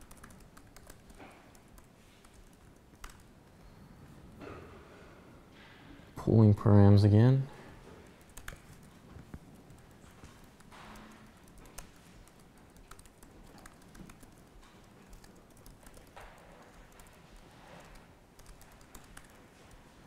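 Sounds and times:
faint keyboard typing: 0.0 - 3.8, 7.7 - 20.0.

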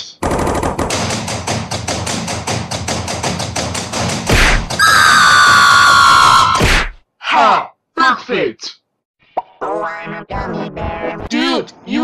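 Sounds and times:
rapid cartoon thumps: 0.2 - 4.8, 6.2 - 7.0.

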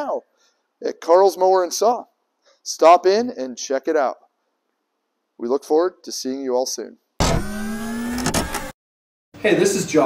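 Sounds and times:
engine-like revving: 7.2 - 8.7.

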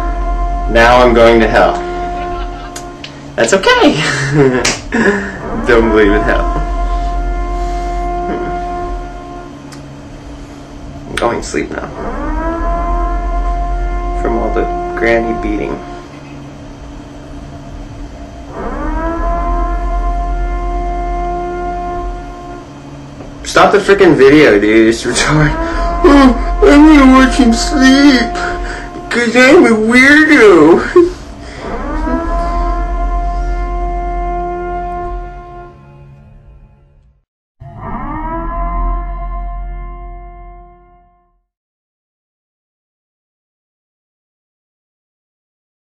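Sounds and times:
siren-like rising tone: 0.0 - 36.9, 37.6 - 41.3
long held musical note: 0.0 - 41.4
low hum: 0.0 - 41.4.

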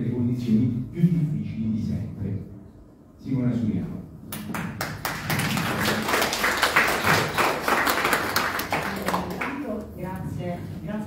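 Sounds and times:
audience applauding: 4.5 - 9.6.

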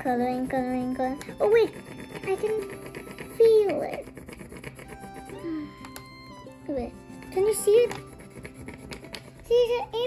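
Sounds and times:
background music: 0.0 - 10.0
crayon scrubbing on paper: 0.0 - 10.0.

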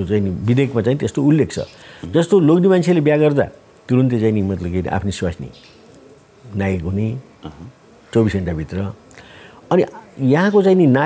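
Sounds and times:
man speaking: 0.0 - 5.6, 6.5 - 9.0, 9.7 - 11.0.

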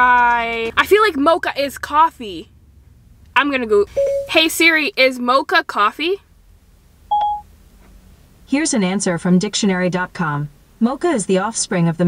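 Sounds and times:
short electronic beep: 3.9 - 4.4, 7.1 - 7.4.

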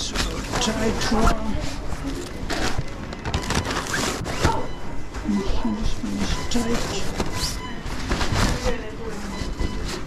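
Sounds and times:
paper bag and fabric rustling: 0.1 - 4.7, 5.8 - 10.0.

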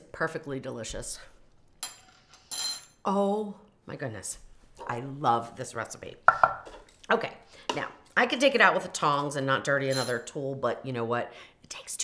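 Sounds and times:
woman speaking: 3.1 - 6.3, 7.1 - 12.0.

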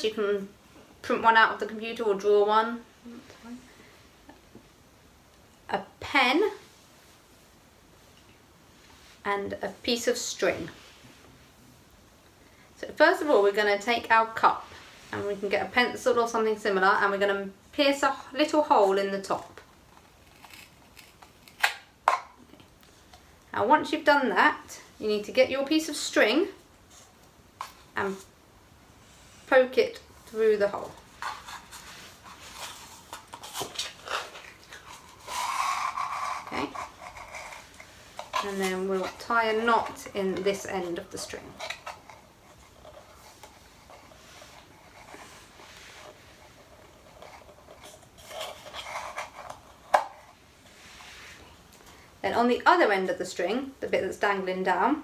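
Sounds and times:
paper cup and string rustling: 30.3 - 51.5.

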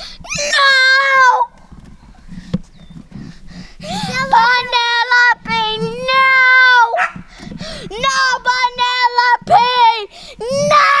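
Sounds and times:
boy singing high notes: 4.1 - 7.0, 7.9 - 11.0.

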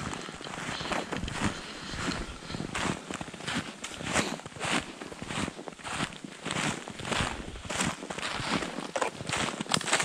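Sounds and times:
footsteps crunching through snow: 0.0 - 10.0.

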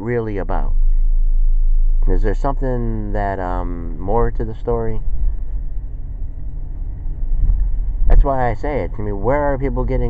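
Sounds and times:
vehicle rumbling in motion: 0.0 - 10.0.

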